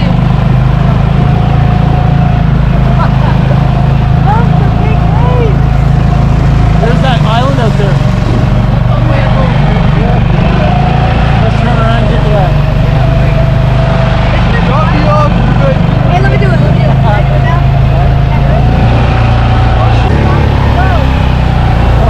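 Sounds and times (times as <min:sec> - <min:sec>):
outboard motor running: 0:00.0 - 0:22.0.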